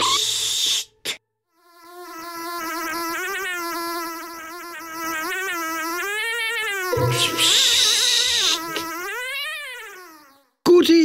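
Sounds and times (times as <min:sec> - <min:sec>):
cartoon fly buzzing: 0:00.0 - 0:10.6.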